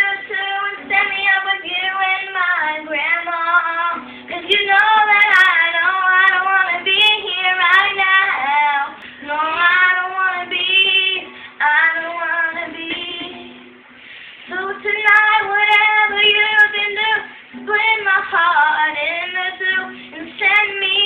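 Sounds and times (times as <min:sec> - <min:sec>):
girl singing pop song: 0:00.0 - 0:21.0
girl breathing: 0:04.0 - 0:04.3, 0:11.2 - 0:11.6, 0:13.9 - 0:14.5, 0:19.9 - 0:20.2.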